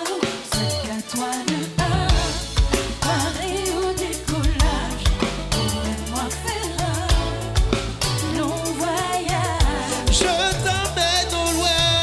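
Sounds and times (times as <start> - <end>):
drum kit: 0.0 - 12.0
bass: 1.8 - 12.0
person singing: 8.2 - 12.0.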